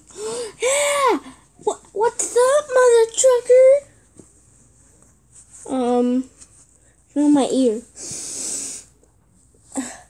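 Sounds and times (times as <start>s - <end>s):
child sniffing loudly: 7.9s - 9.0s.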